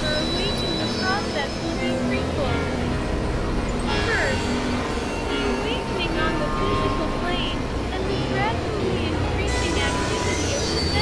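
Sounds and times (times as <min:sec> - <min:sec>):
chirping synth pitch glides: 0:00.0 - 0:11.0
low synthesizer drone: 0:00.0 - 0:11.0.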